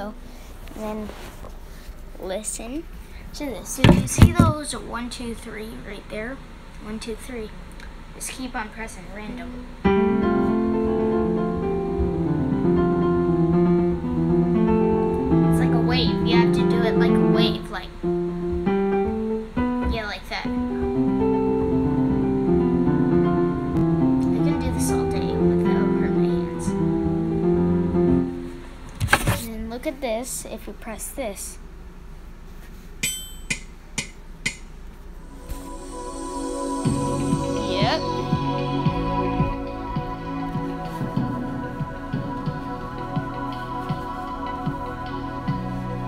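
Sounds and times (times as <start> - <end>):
electronic keyboard notes: 9.3 - 28.9, 35.1 - 46.0.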